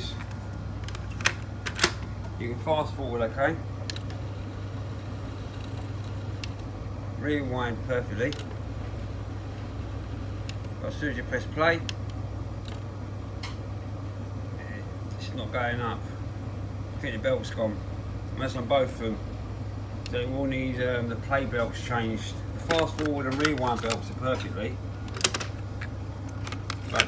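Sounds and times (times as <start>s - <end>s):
cassette deck humming: 0.0s - 27.0s.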